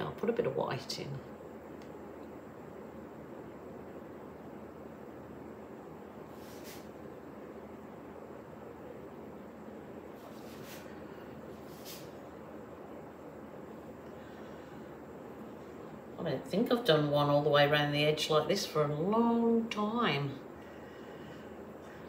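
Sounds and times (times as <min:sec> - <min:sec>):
soft hisses: 0:06.2 - 0:07.2, 0:10.0 - 0:12.6.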